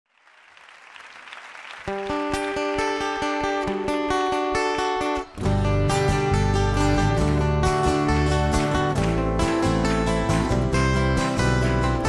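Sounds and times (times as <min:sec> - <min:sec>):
audience applause: 0:00.1 - 0:02.9.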